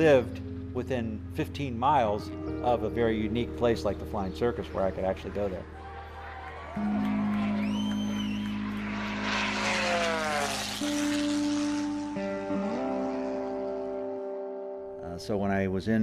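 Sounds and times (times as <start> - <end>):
slow held chords music: 0.0 - 15.4
propeller airplane passing by: 6.8 - 14.4.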